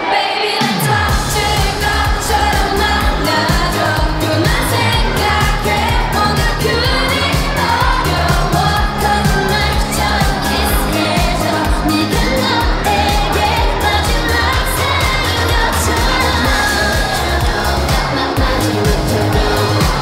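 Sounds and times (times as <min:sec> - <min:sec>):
pop song with sung vocals: 0:00.0 - 0:20.0.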